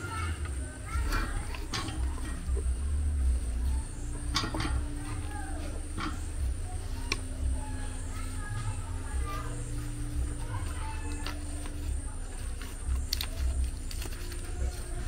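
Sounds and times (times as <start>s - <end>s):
spatula working dough in metal pot: 0.0s - 15.0s
steady low rumble: 0.0s - 15.0s
sharp clicks and knocks: 0.4s - 2.7s, 4.1s - 5.2s.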